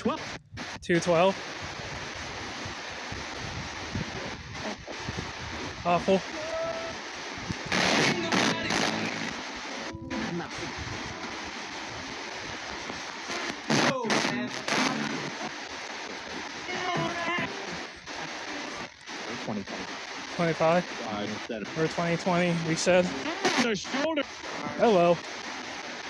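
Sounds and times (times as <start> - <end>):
chopped radio voices: 0.0 - 26.0
loud static bursts: 0.0 - 26.0
radio static hiss: 0.0 - 26.0.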